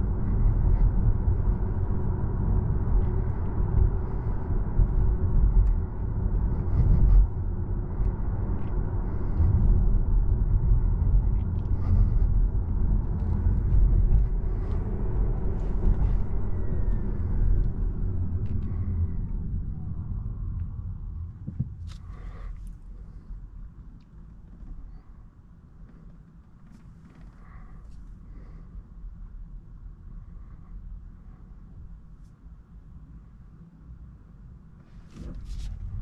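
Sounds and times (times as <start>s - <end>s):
road and tyre rumble in car: 0.0s - 36.0s.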